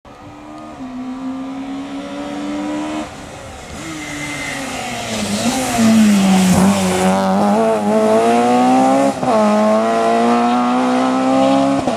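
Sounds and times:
rally car engine revving: 0:00.3 - 0:11.9.

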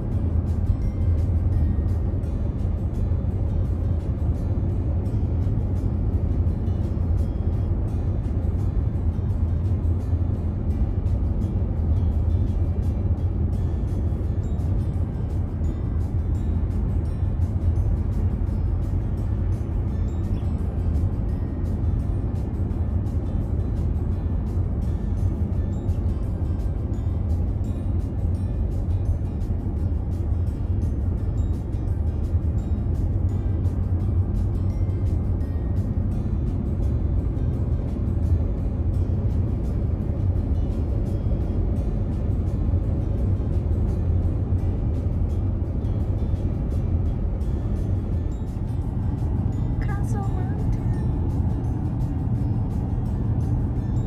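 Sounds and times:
car road and engine rumble: 0:00.0 - 0:54.0
music playing: 0:00.0 - 0:54.0.

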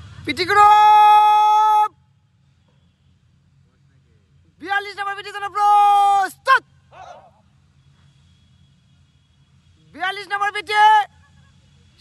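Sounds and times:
thin high whine: 0:00.0 - 0:12.0
man shouting: 0:00.3 - 0:02.0, 0:04.6 - 0:07.4, 0:10.0 - 0:11.2.

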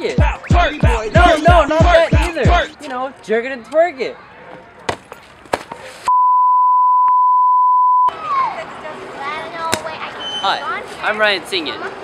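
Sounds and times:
electronic censor bleep: 0:06.1 - 0:08.1.

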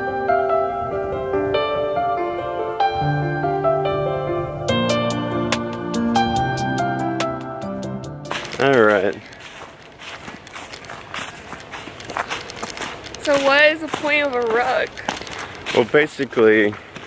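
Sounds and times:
footsteps in dry leaves: 0:08.3 - 0:17.0.

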